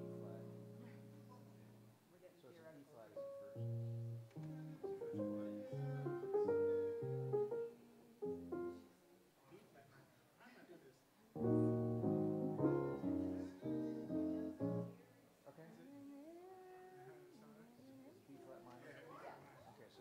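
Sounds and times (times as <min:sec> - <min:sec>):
piano chords: 0:00.0 - 0:01.9, 0:03.2 - 0:09.0, 0:11.4 - 0:15.1.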